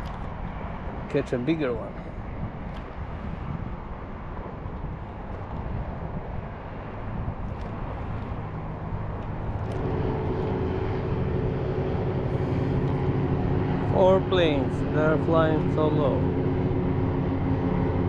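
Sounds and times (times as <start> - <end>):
low-flying airplane engines: 0.0 - 18.0.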